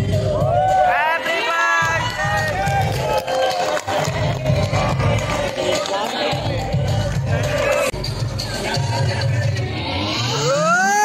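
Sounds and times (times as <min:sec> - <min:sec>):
crowd voices: 0:00.0 - 0:11.0
party music with bass beat: 0:00.0 - 0:11.0
hands clapping: 0:01.8 - 0:07.2.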